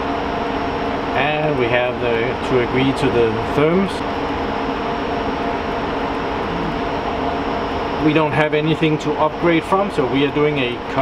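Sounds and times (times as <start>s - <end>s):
server cooling fans running: 0.0s - 11.0s.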